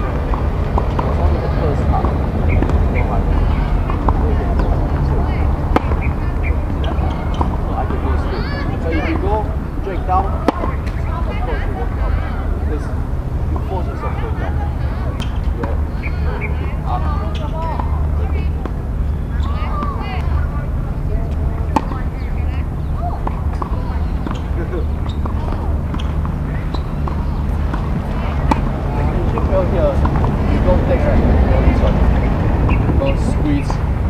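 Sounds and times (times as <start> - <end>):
faint talk: 0.0 - 33.9
steady low rumble: 0.0 - 34.0
tennis balls struck by racquets: 0.0 - 34.0.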